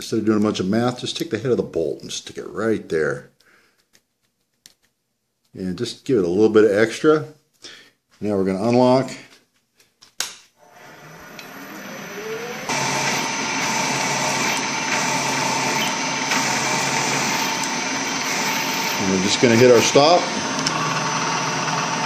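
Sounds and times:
end mill cutting metal: 0:10.6 - 0:22.0
milling machine spindle whine: 0:10.6 - 0:22.0.

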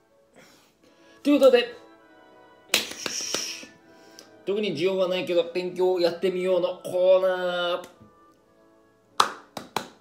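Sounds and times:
faint music: 0:00.0 - 0:10.0
sharp hand claps: 0:02.7 - 0:03.7, 0:09.2 - 0:10.0.

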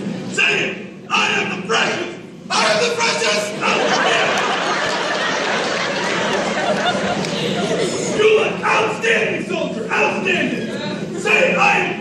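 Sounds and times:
crowd murmur: 0:03.4 - 0:12.0.

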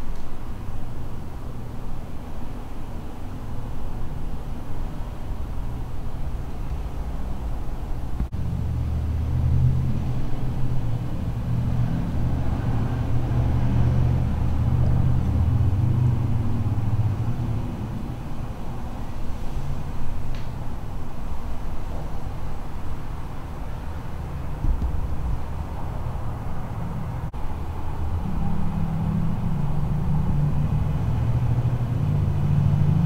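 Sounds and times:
vehicle engine rumble: 0:00.0 - 0:33.0.

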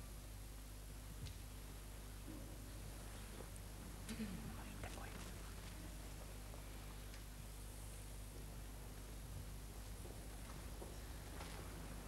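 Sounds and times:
low electrical hum: 0:00.0 - 0:12.0
faint murmured voice: 0:03.2 - 0:06.9.

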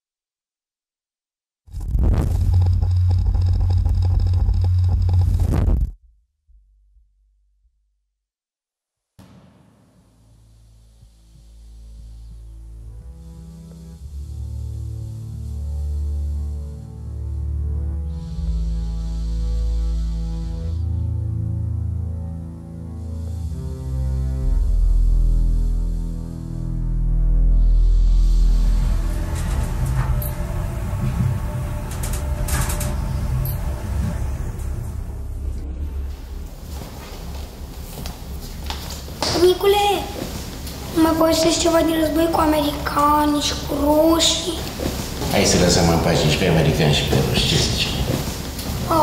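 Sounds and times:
deep cinematic rumble: 0:01.7 - 0:07.2, 0:24.4 - 0:39.2
low droning hum of film score: 0:28.4 - 0:39.4, 0:44.6 - 0:49.0.

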